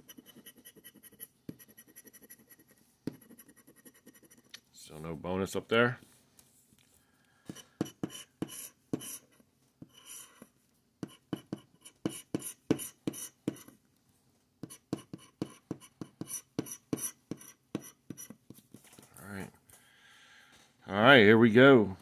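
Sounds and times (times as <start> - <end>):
scratching lottery ticket: 0.0 - 4.5.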